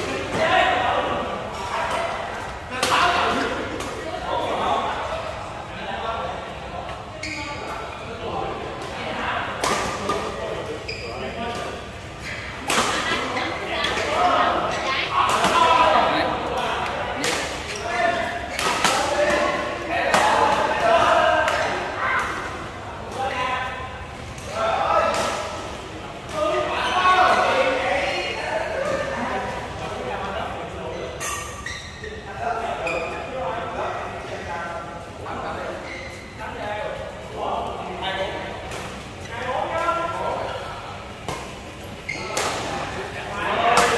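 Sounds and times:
players talking and calling: 0.0s - 43.9s.

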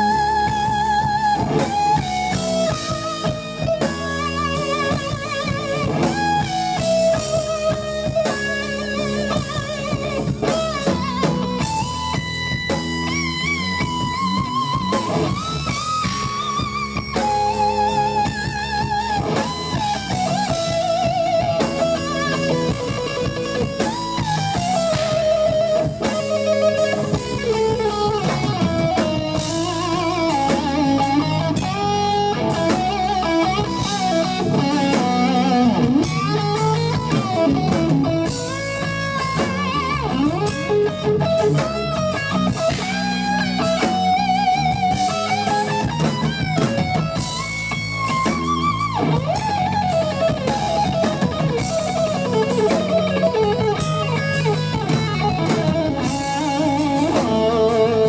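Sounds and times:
bass guitar: 0.0s - 58.0s
drum kit: 0.0s - 58.0s
electric guitar melody: 0.0s - 58.0s.

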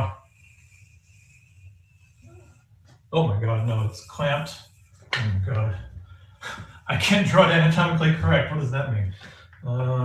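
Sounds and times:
chalk squeaking on blackboard: 0.0s - 6.0s.

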